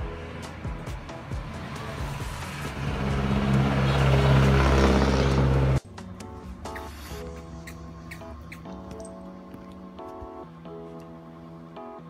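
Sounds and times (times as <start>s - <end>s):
vehicle engine running: 0.0s - 6.7s
background music: 0.0s - 12.0s.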